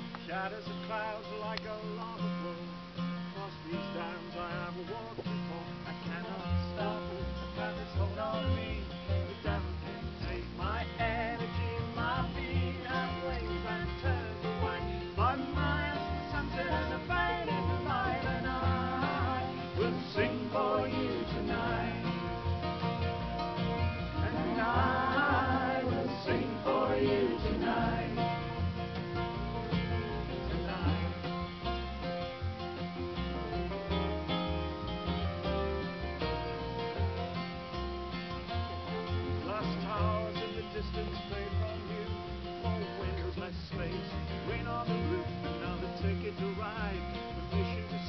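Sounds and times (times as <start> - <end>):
fiddle: 0.0 - 48.0
mandolin: 0.0 - 48.0
plucked double bass: 0.0 - 48.0
strummed acoustic guitars: 0.0 - 48.0.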